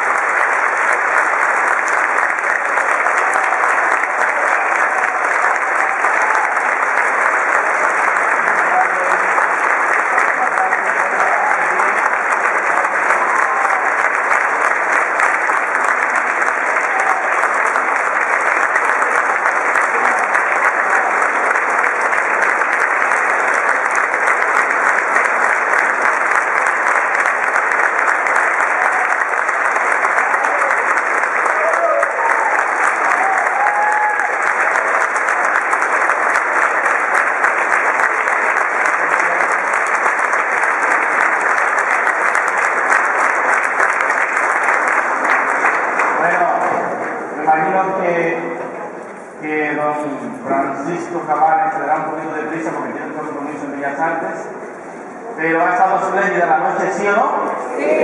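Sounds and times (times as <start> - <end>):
audience applauding: 0.0 - 58.0
voices from crowd: 0.0 - 58.0.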